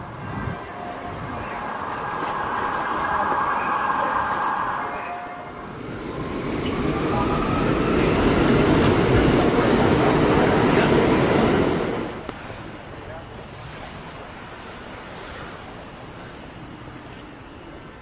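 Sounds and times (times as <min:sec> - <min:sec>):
street traffic: 0:00.0 - 0:18.0
subway train running: 0:00.0 - 0:18.0.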